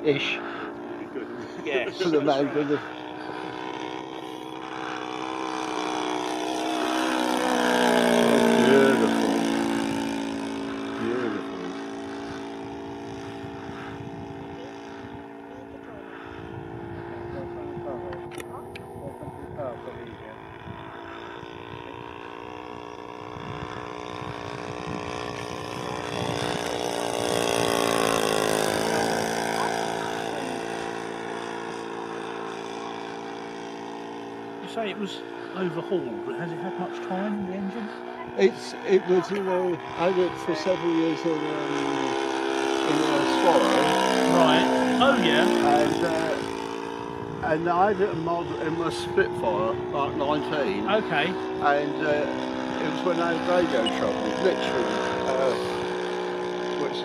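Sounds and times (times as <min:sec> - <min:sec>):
model plane engine flying past: 0:00.0 - 0:57.0.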